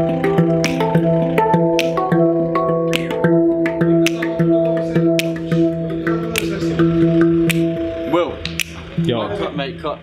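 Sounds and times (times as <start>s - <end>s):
handpan notes ringing: 0.0s - 9.9s.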